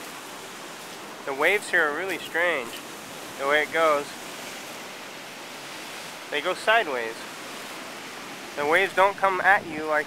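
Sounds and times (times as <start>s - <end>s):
surf washing on pebble beach: 0.0s - 10.0s.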